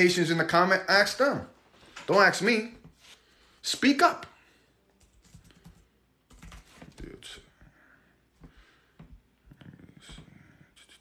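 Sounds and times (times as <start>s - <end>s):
faint keyboard typing taps: 5.0s - 7.1s.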